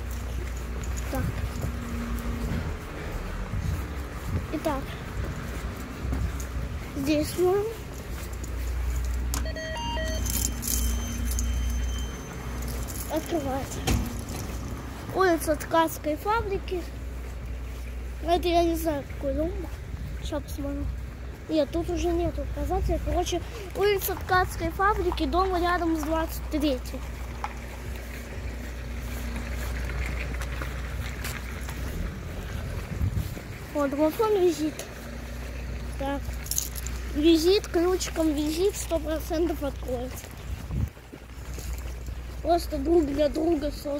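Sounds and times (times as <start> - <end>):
wind rumbling on microphone: 0.0 - 9.3, 12.4 - 37.7, 38.7 - 43.9
faint high tone: 9.4 - 12.6
short beeps at different pitches: 9.4 - 12.7.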